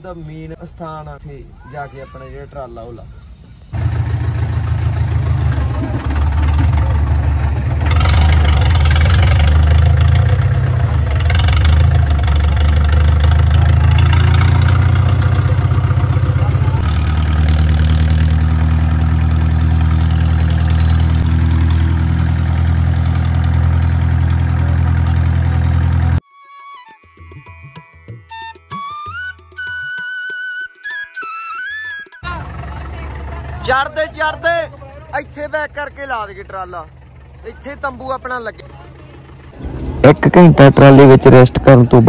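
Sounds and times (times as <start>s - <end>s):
tractor diesel engine running: 3.8s - 26.2s, 32.2s - 42.0s.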